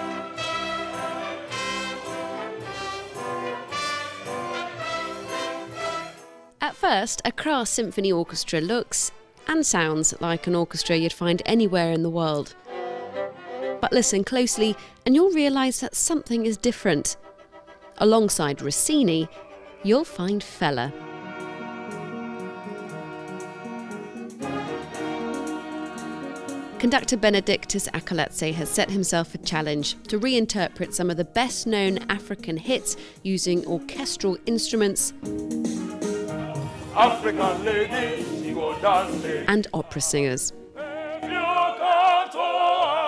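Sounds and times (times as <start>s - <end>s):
strings and woodwinds: 0.0s - 6.4s, 8.1s - 15.0s, 16.7s - 27.2s, 35.8s - 39.5s
brass notes: 0.0s - 15.5s, 16.7s - 27.6s, 35.2s - 43.0s.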